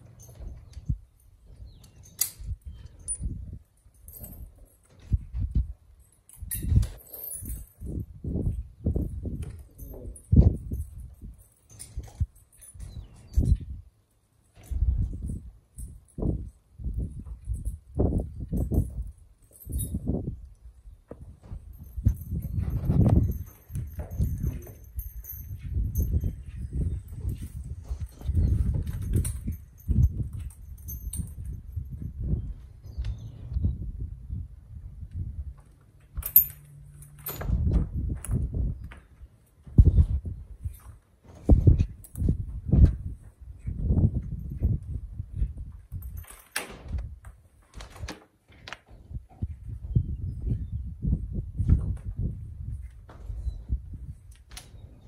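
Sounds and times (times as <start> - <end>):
hooves stamping on dirt floor: 0.0 - 3.2, 20.9 - 33.7, 37.3 - 55.0
harness chains clinking: 0.0 - 33.6, 35.5 - 47.0.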